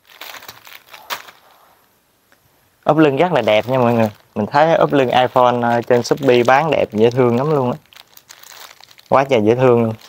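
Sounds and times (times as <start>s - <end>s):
plastic bags crinkling: 0.0s - 1.8s, 3.1s - 10.0s
sharp plastic crackle: 0.0s - 1.8s, 3.2s - 10.0s.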